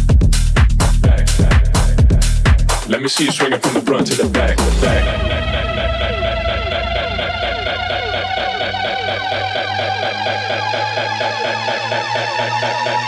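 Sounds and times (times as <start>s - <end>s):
electronic dance music: 0.0s - 13.0s
rising synth tone: 4.6s - 13.0s.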